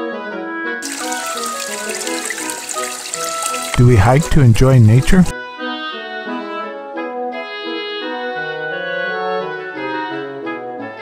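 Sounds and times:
background music with held notes: 0:00.0 - 0:11.0
creek trickling over rocks: 0:00.8 - 0:05.3.

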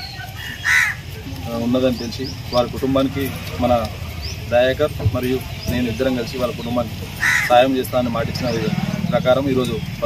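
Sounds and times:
crow cawing: 0:00.4 - 0:01.0, 0:07.2 - 0:07.6.

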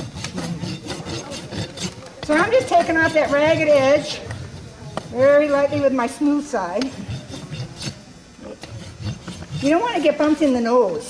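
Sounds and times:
rasp scraping horse hoof: 0:00.0 - 0:06.0, 0:06.8 - 0:10.7.

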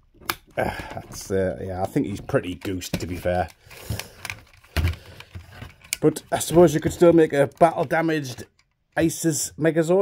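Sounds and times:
plastic toy clicking and knocking: 0:00.1 - 0:09.2.

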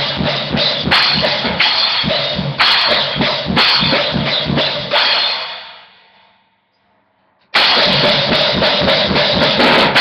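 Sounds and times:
drum kit playing fast punk beat: 0:00.0 - 0:05.4, 0:07.6 - 0:10.0
cymbal ringing out: 0:00.0 - 0:06.4.

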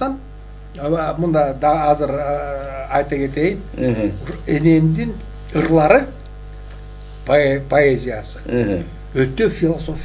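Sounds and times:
person speaking: 0:00.0 - 0:06.3, 0:07.2 - 0:10.0
electrical mains hum: 0:00.0 - 0:10.0.

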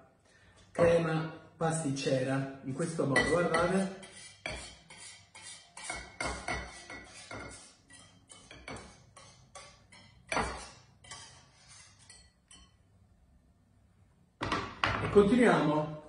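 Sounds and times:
whisk clinking against bowl: 0:03.1 - 0:12.8.

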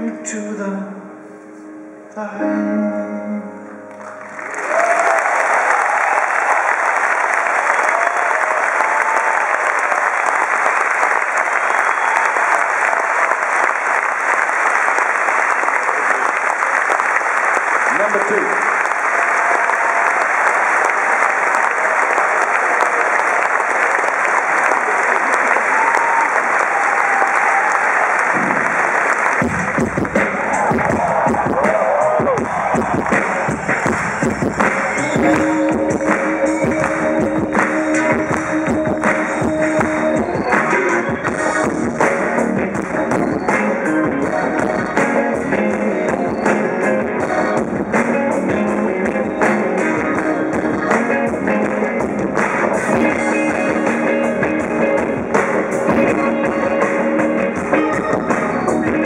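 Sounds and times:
audience applauding and cheering: 0:03.9 - 0:59.0
band playing heavy bass groove: 0:28.2 - 0:59.0.

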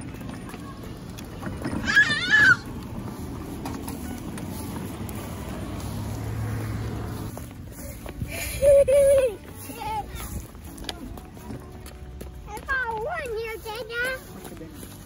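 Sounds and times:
wagon wheels rolling on pavers: 0:00.0 - 0:15.0
child squealing: 0:01.8 - 0:02.7.

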